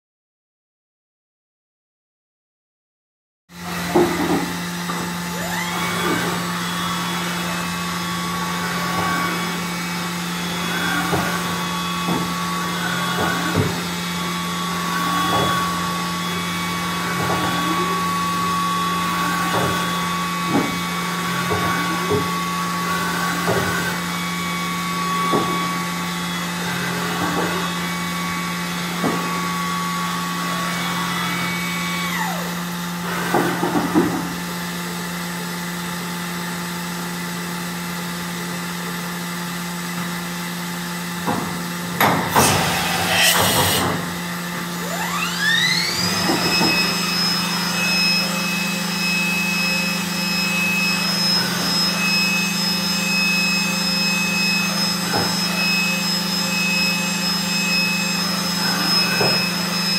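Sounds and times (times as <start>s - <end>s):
short rising and falling whirs: 3.6s - 34.4s, 42.3s - 59.9s
high spindle whine: 4.9s - 33.1s, 42.4s - 59.9s.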